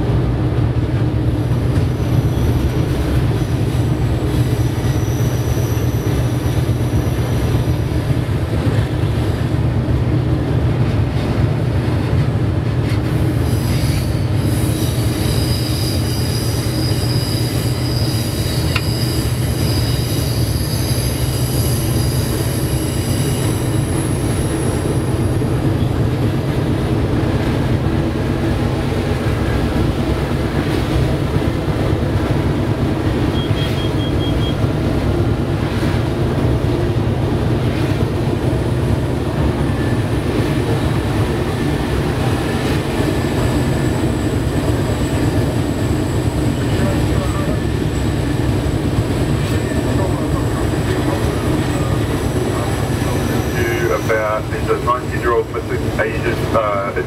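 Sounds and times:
locomotive engine droning: 0.0s - 57.0s
high-pitched wheel squeal: 4.3s - 7.4s, 13.4s - 25.2s, 33.3s - 34.6s.

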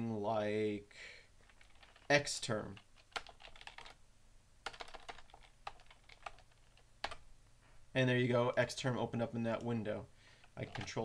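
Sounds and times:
keyboard typing: 1.4s - 2.1s, 2.7s - 4.0s, 4.6s - 7.2s, 10.5s - 11.0s.

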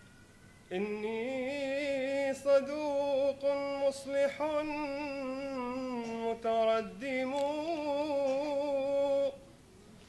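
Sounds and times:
man chanting: 0.7s - 9.5s.

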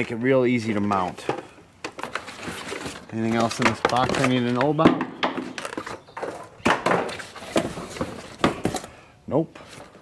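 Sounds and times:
sharp knocks and clatters: 3.4s - 8.8s.

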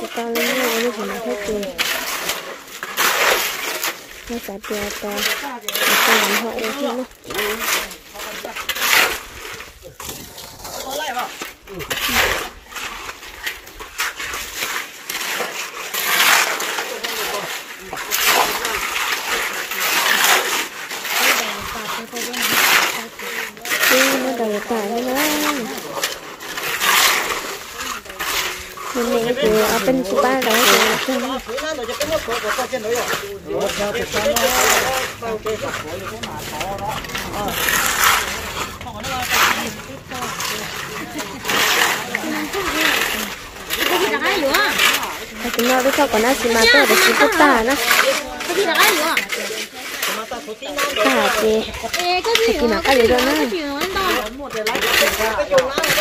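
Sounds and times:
shovels scraping wet concrete: 0.0s - 56.0s.

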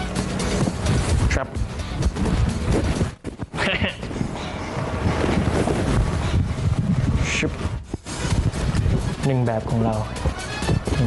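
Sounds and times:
clothing rubbing on microphone: 2.0s - 9.3s.

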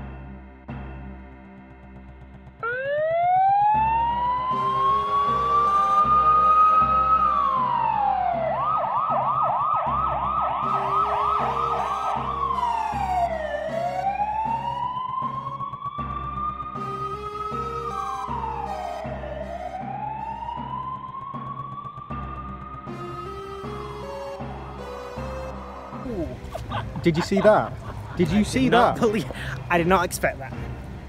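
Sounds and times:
background music with beat: 0.0s - 31.0s
emergency vehicle siren: 2.6s - 26.8s.

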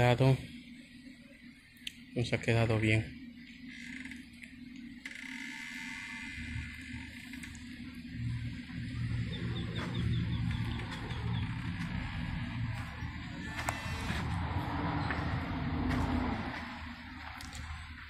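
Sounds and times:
low rumble: 8.2s - 18.0s
small bird chirping: 9.0s - 12.3s.

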